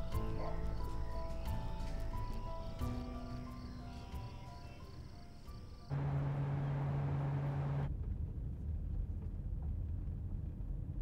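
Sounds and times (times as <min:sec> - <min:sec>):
low drone with hiss: 0:00.0 - 0:07.9
car cabin road rumble: 0:05.9 - 0:07.9.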